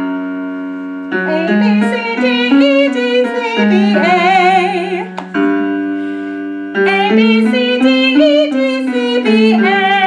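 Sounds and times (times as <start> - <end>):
piano chord: 0.0 - 10.0
woman singing: 1.2 - 5.2, 6.8 - 10.0.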